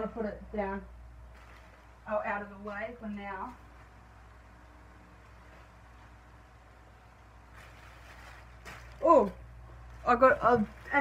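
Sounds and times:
fan humming: 0.0 - 11.0
faint rustling: 1.2 - 4.3, 4.9 - 11.0.

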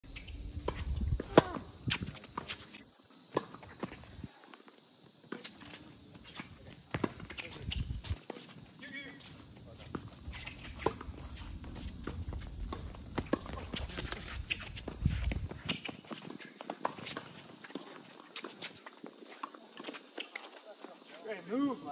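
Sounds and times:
shoes squeaking on court: 0.1 - 21.2.

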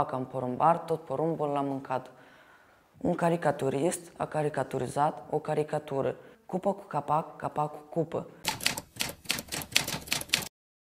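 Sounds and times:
typing key clacks: 8.5 - 10.5.

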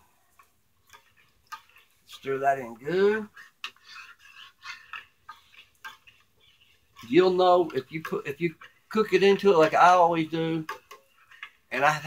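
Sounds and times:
utensil scraping metal pot: 0.1 - 12.0.

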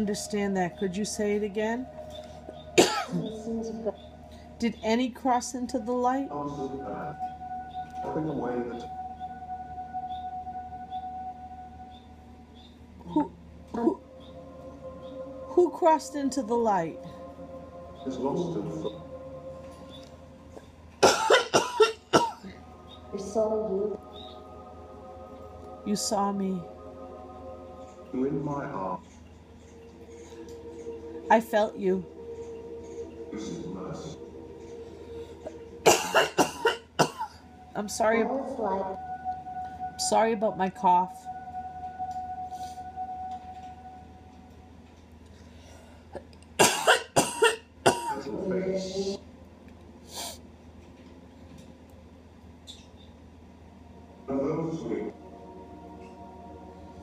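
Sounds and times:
low steady hum of tones: 0.0 - 57.0
man coughing: 2.8 - 3.5, 21.0 - 22.6, 35.8 - 37.4, 46.6 - 48.3.

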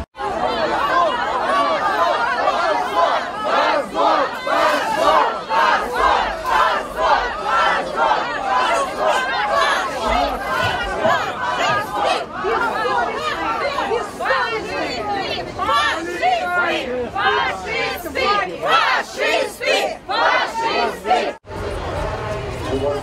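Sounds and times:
crowd chanting: 0.0 - 23.0.

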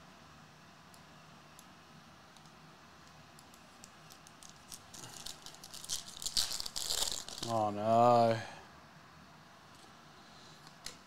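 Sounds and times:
foil card pack crinkling: 4.1 - 7.6.

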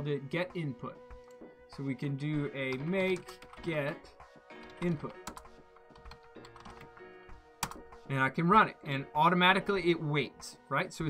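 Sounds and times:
keyboard keystrokes typing: 2.7 - 3.8, 4.6 - 8.0.

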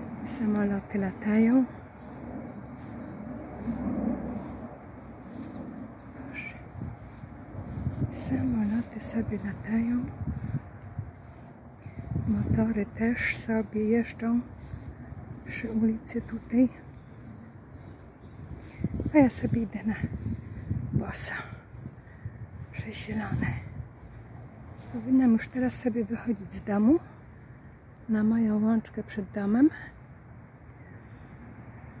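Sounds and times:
distant jet aircraft rumble: 0.0 - 28.1.

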